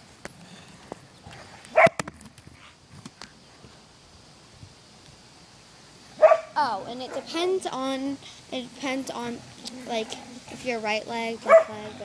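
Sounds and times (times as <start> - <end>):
dog barking: 6.2 - 7.2, 11.4 - 11.8.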